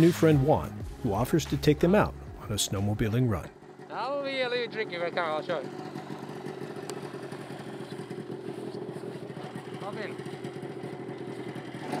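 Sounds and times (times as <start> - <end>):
snowmobile engine idling: 1.8 - 12.0.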